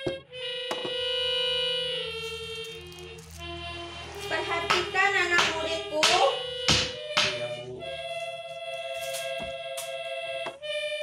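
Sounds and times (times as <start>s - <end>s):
background music chord: 0.0s - 11.0s
sharp knocks: 4.6s - 7.5s
person speaking: 7.2s - 8.4s.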